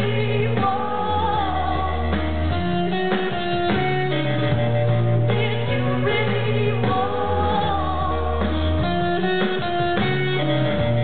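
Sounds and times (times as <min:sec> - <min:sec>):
low bass line: 0:00.0 - 0:11.0
muffled live band music: 0:00.0 - 0:11.0.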